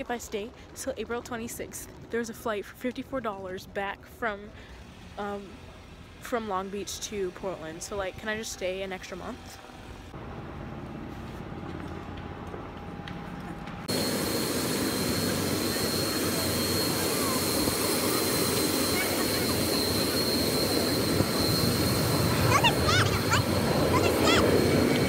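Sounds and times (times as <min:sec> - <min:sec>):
high steady jet whine: 0:04.7 - 0:25.0
jet engines roaring: 0:10.1 - 0:25.0.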